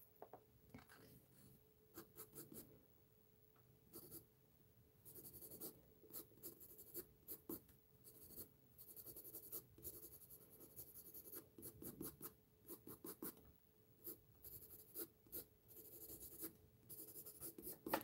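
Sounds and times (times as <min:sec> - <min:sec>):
pencil scratching on paper: 0:03.9 - 0:04.2, 0:05.1 - 0:13.4, 0:14.0 - 0:18.0.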